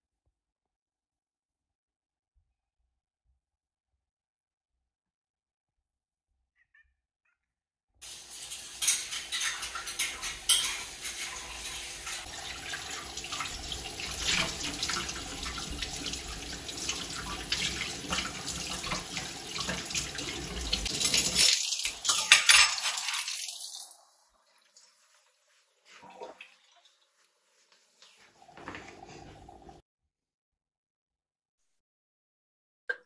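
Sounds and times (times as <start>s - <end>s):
tap water running into sink: 8.0s - 25.0s, 28.4s - 29.8s.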